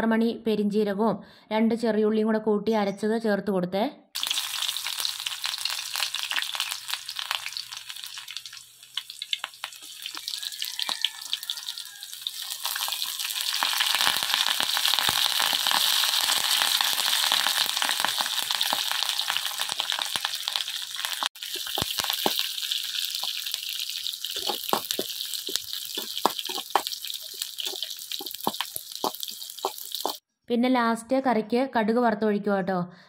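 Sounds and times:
leaves sizzling in hot oil: 4.2s - 30.2s.

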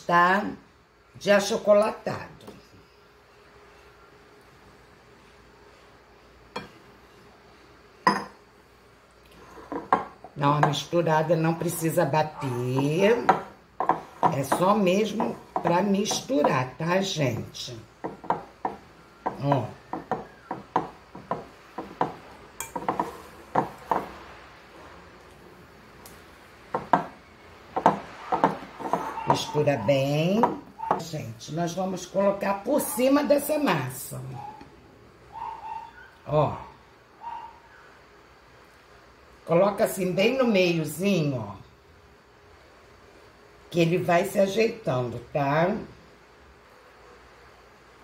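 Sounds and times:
glass clinking against glass bowl: 8.0s - 8.4s
spatula knocking against glass bowl: 18.0s - 24.1s.

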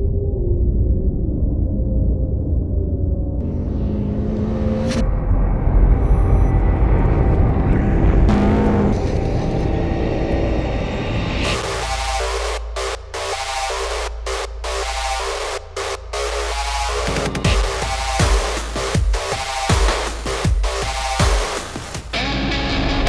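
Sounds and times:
race car engine rumble: 6.0s - 10.6s
electronic dance music: 8.3s - 9.0s, 11.6s - 22.0s.

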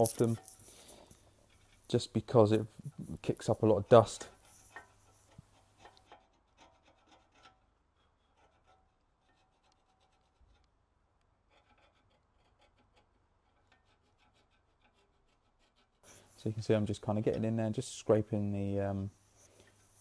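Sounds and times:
screwdriver scraping metal: 4.1s - 10.8s.

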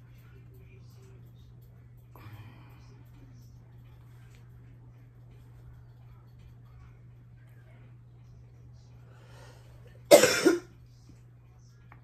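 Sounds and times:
woman coughing: 10.1s - 10.7s.

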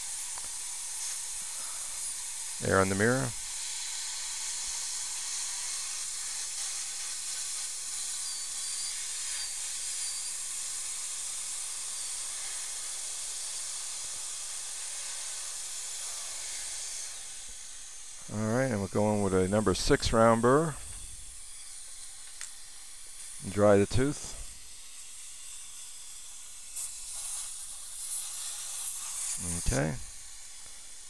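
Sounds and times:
dental suction hissing: 0.0s - 4.2s, 16.0s - 31.0s
dental drill whining: 0.0s - 31.0s.

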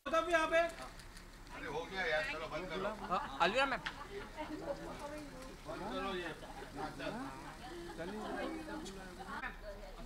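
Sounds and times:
overlapping chatter: 0.7s - 10.0s.

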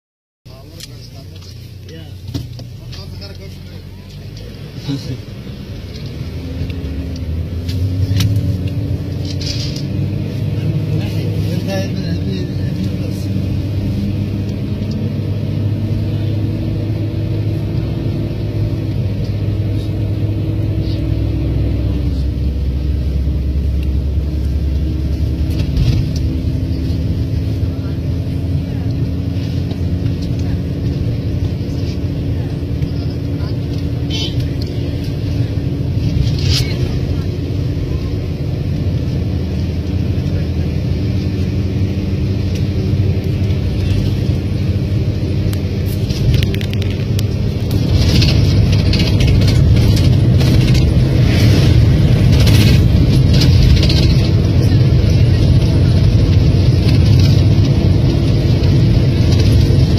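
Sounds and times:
vehicle engine and road noise: 0.5s - 59.9s.

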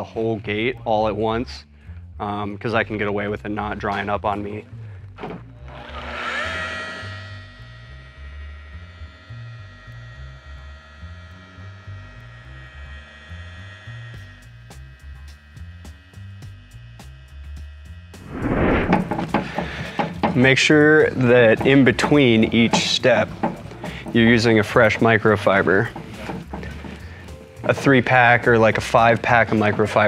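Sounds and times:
background music with bass: 0.0s - 5.7s, 11.0s - 30.0s
rotary polisher whining: 5.6s - 14.7s.

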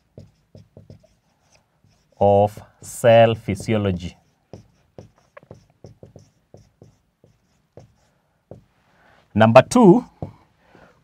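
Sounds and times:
marker writing on whiteboard: 0.0s - 8.7s, 10.0s - 10.4s
marker squeak: 5.0s - 5.7s.

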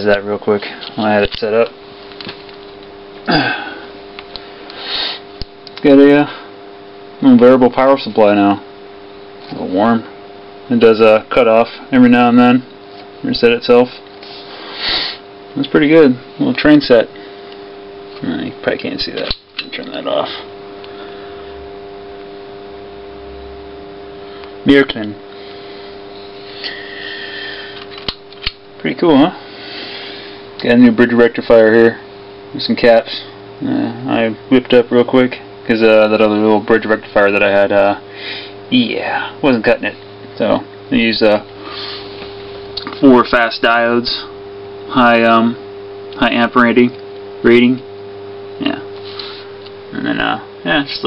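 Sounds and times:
faint steady hum: 0.0s - 51.0s
higher-pitched buzz: 0.0s - 51.0s.

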